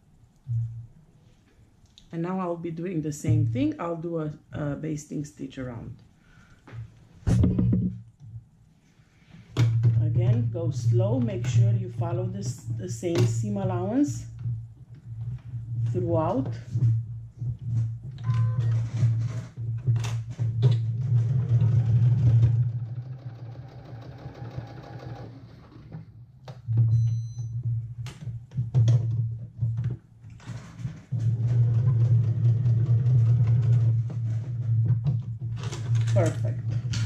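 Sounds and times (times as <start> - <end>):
sewing machine running: 21.4 - 25.8.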